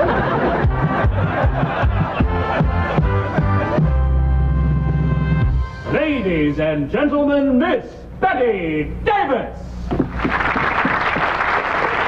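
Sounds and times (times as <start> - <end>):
audience applauding: 10.1 - 12.0.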